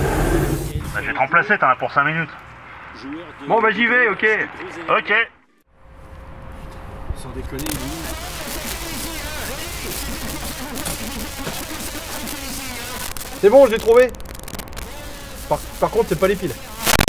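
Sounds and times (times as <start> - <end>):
steady hiss: 7.4 - 17.0.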